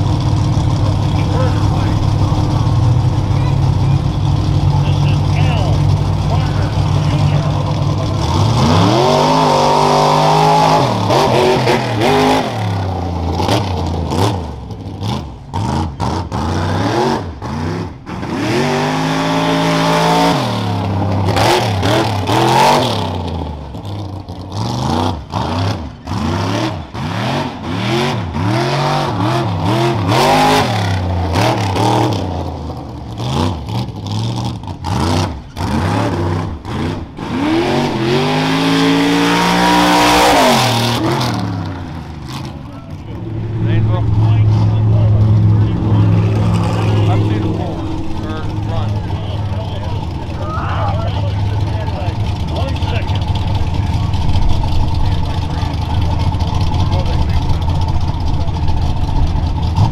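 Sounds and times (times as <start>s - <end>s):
truck engine revving hard: 0.0s - 59.9s.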